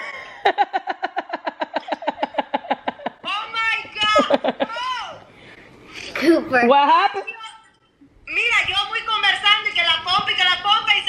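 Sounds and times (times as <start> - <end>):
person laughing: 4.0 - 4.9.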